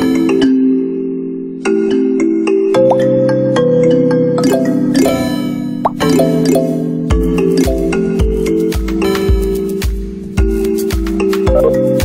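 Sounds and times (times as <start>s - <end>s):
mallet percussion melody: 1.7s - 12.0s
held chords: 11.4s - 12.0s.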